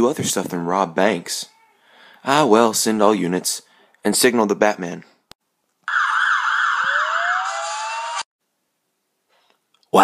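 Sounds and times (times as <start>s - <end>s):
police siren wailing: 5.9s - 8.3s
siren winding up: 5.9s - 8.3s.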